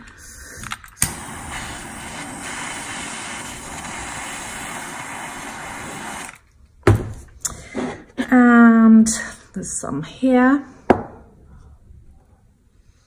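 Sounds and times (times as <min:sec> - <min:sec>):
heat gun blowing: 0:01.0 - 0:06.4.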